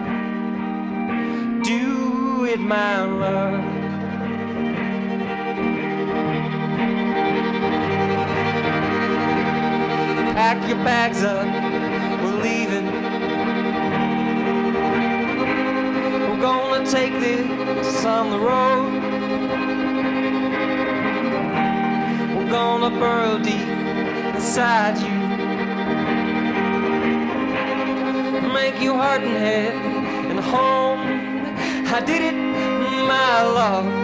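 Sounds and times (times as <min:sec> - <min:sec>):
electric guitar accompaniment: 0:00.0 - 0:34.0
violin melody: 0:00.0 - 0:34.0.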